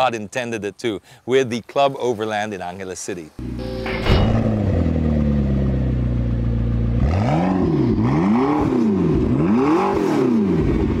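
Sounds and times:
vehicle engine idling and revving: 3.4 - 11.0.

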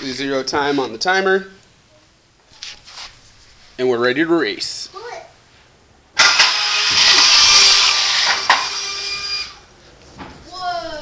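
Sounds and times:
electric fan high-pitched whine: 4.4 - 11.0.

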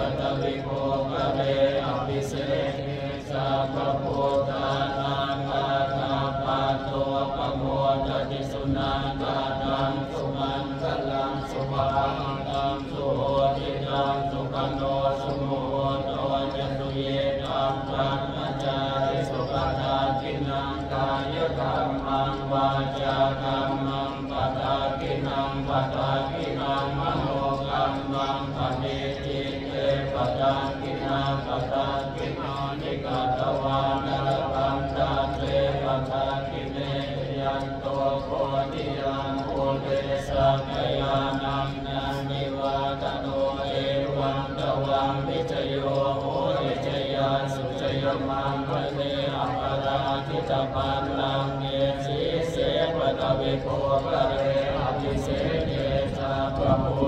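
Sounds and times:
voices chanting: 0.0 - 57.0.

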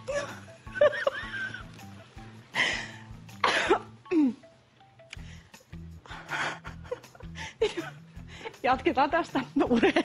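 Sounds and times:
woman laughing: 0.0 - 1.7, 6.3 - 8.6, 9.6 - 10.0.

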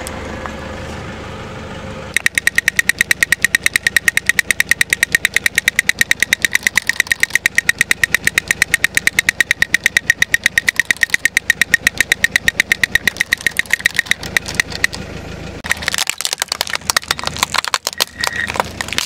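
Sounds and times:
toy drums tapping rattle: 2.2 - 15.0, 15.6 - 19.0.

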